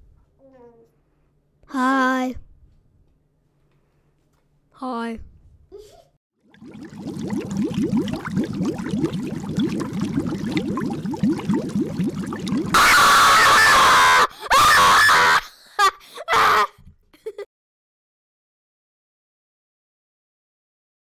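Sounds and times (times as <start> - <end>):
loud distorted screaming: 12.7 - 15.4.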